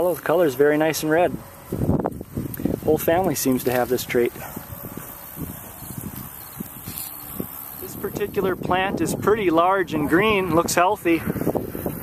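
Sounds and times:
wind rumble on microphone: 0.9 - 12.0
small ticks: 5.7 - 7.8.

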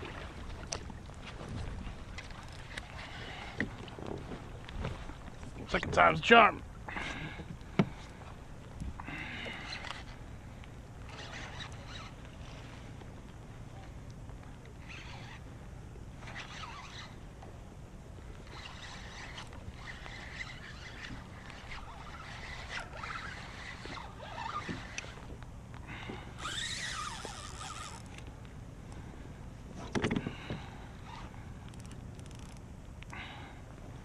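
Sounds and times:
low rumble of wind and water: 0.0 - 34.0
fishing reel scraping and creaking: 2.2 - 4.3, 9.0 - 10.3, 11.0 - 13.0, 14.7 - 17.5, 18.3 - 28.3, 29.8 - 33.2.

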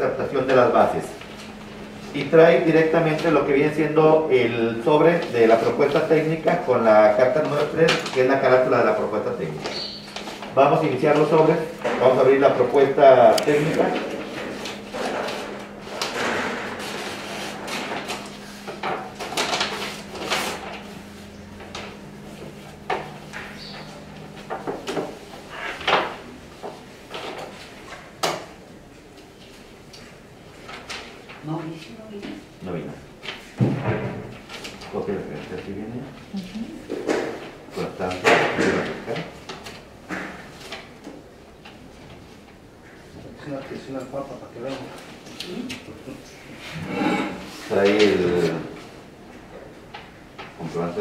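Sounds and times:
paper rustling and crinkling: 5.0 - 8.6, 9.6 - 22.8, 47.5 - 48.8.

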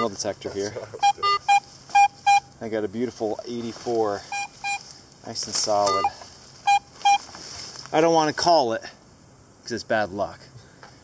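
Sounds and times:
metal detector beeps: 1.0 - 2.5, 4.2 - 4.9, 5.7 - 7.3.

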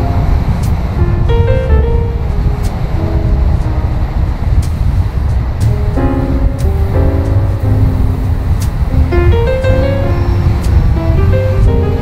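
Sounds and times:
dense low rumble: 0.0 - 12.0
held pitched notes: 0.0 - 12.0.

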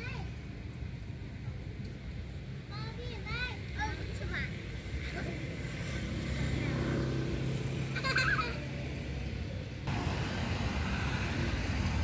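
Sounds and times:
low engine hum: 3.7 - 12.0.

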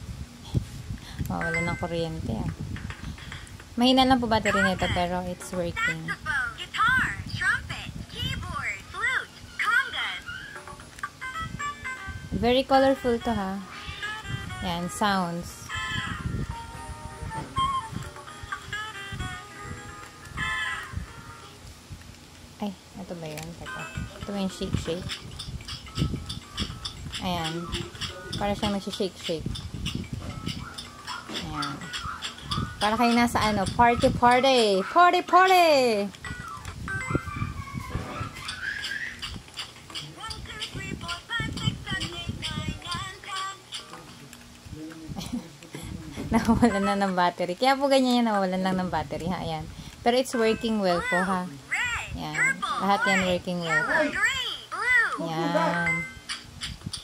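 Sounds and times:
toy playing electronic musical tones: 1.4 - 2.1, 9.4 - 21.6, 23.6 - 34.4, 36.2 - 39.4, 55.5 - 57.0.

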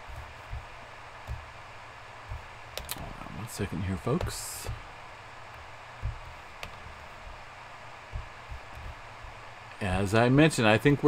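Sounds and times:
faint low thuds: 0.0 - 10.3
background hiss and hum: 0.0 - 11.0.

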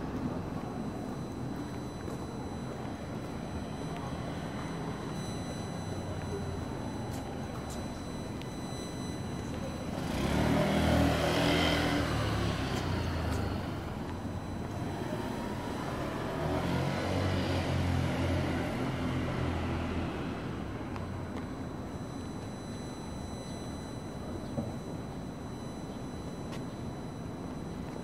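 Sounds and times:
street ambience: 0.0 - 28.0
vehicles driving past: 9.8 - 21.5.

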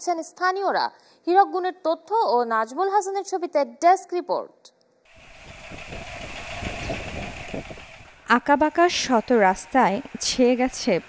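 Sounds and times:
constant higher hum: 5.1 - 11.0
engine-like rumble: 5.1 - 11.0.

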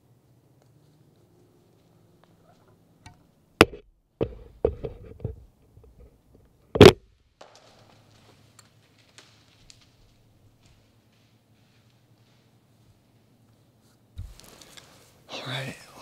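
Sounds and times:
faint rustling: 7.6 - 15.9.

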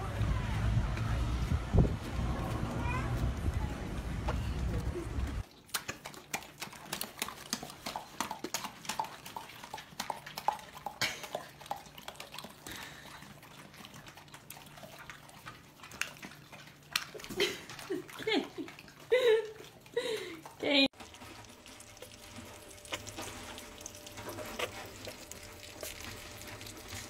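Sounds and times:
dogs chewing wetly: 2.4 - 27.0.

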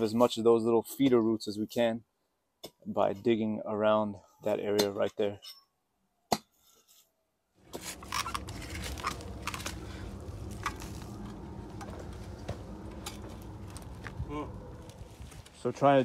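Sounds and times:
low background rumble: 7.6 - 16.0.

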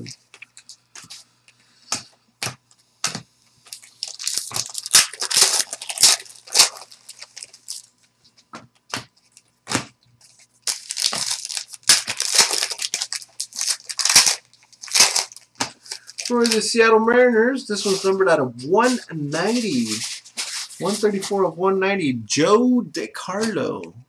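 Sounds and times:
plastic wrapper crinkling and tearing: 3.7 - 8.0, 10.2 - 16.7.

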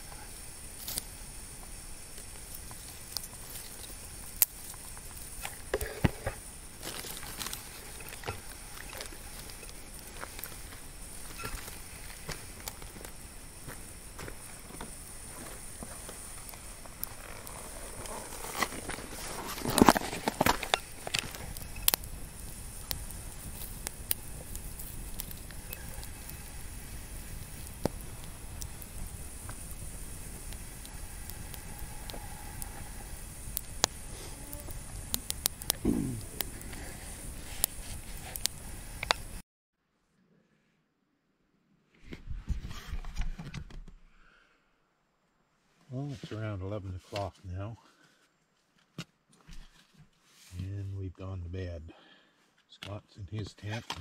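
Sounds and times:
campfire crackling and popping: 0.0 - 39.4.

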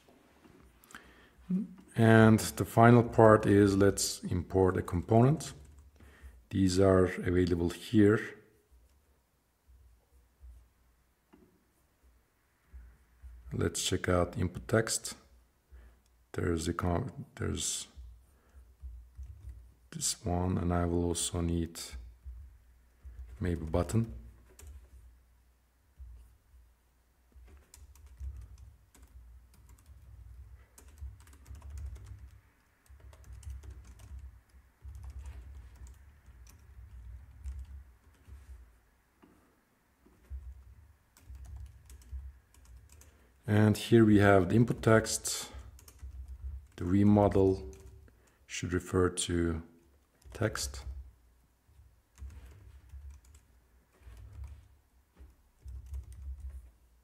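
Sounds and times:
keyboard typing: 18.5 - 20.2, 21.9 - 25.1, 27.3 - 39.4, 40.0 - 43.4, 44.7 - 48.3, 50.0 - 51.1, 51.7 - 56.8.

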